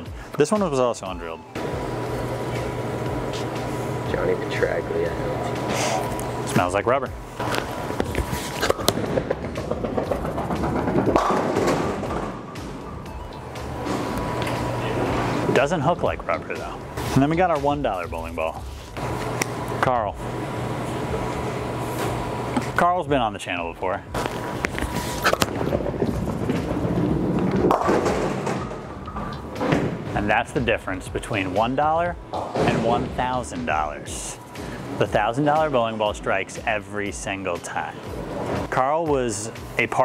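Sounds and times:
background music: 0.0 - 40.0
bowling ball rolling: 7.4 - 17.0, 24.2 - 30.7
bowling pins crashing: 7.8 - 12.9, 25.2 - 30.2
bowling ball thud on lane: 8.7 - 12.5, 25.3 - 30.1.

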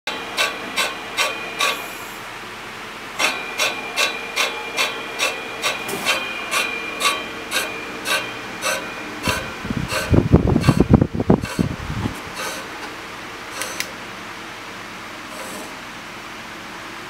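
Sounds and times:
saw blade ticking against wood: 0.4 - 1.8, 3.2 - 11.7.

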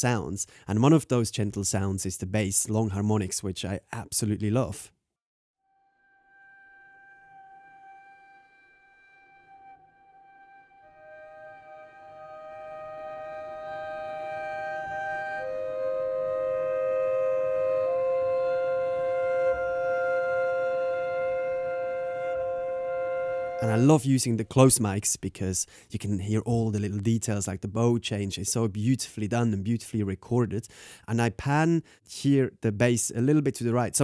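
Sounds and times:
bowed double bass harmonics: 5.8 - 24.9.

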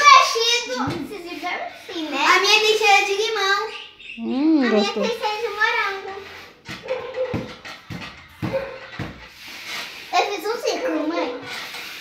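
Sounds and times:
child speaking: 2.0 - 6.2, 10.2 - 11.4.

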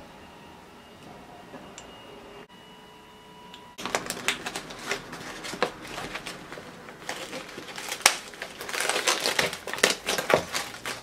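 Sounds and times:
plastic packaging crinkling: 3.8 - 11.0.

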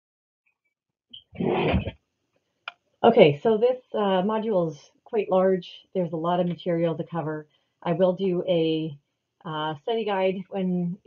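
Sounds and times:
woman speaking: 1.2 - 1.9, 3.0 - 8.9, 9.5 - 11.0.

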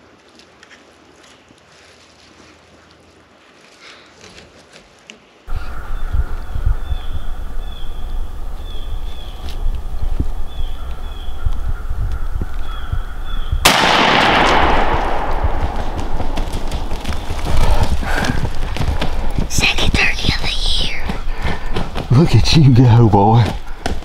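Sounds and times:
low rumble on microphone: 5.5 - 20.1
high bird calls: 5.5 - 24.0
shotgun shot: 13.6 - 17.2.

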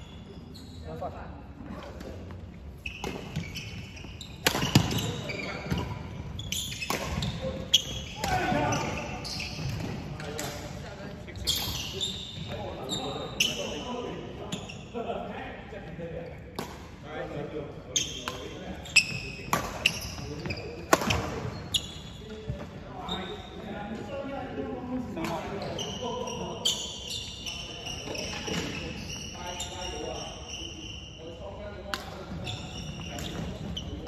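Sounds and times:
shoes squeaking on court floor: 0.0 - 15.0, 17.9 - 34.0
racket hitting shuttlecock: 4.4 - 5.1, 6.8 - 7.4, 20.9 - 21.4.

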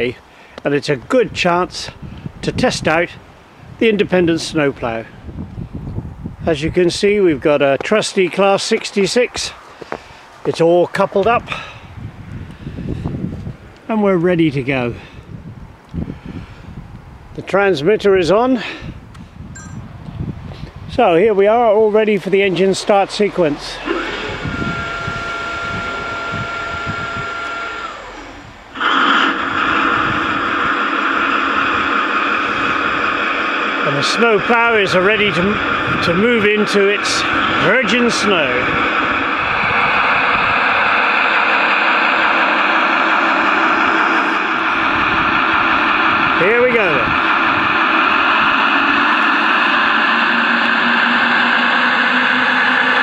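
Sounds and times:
low hum: 19.2 - 20.4, 21.0 - 36.2, 38.6 - 53.0
electronic whine: 19.6 - 19.9, 22.5 - 53.0
diesel engine idling: 21.0 - 53.0.

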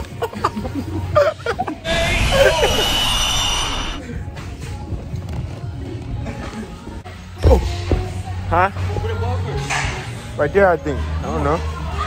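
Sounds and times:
hissing crash sound effect: 1.9 - 4.0.

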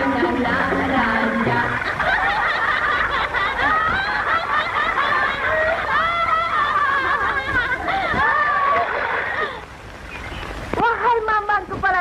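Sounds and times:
women laughing and squealing: 1.2 - 9.7.

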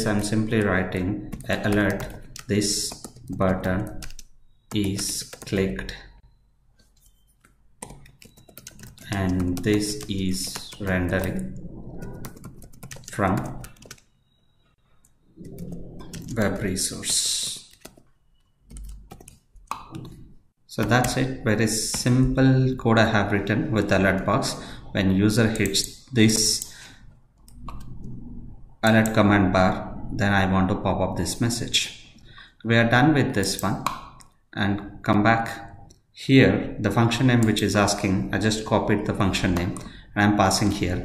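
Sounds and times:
computer mouse clicks: 4.0 - 5.6, 15.0 - 20.2, 27.4 - 28.2.

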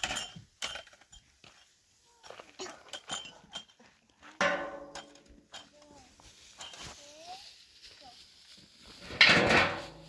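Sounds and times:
household containers clattering: 0.0 - 1.8, 2.6 - 5.7, 9.1 - 10.0.

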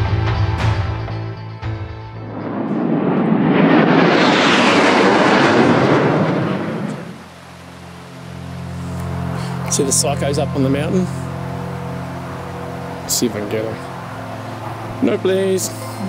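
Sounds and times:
jet flying past overhead: 1.9 - 9.7.

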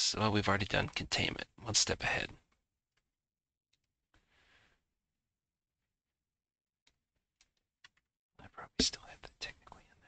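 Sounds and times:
man whispering: 8.4 - 10.0.

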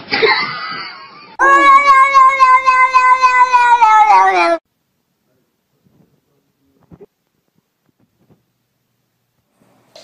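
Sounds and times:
cat yowling: 1.4 - 4.6.

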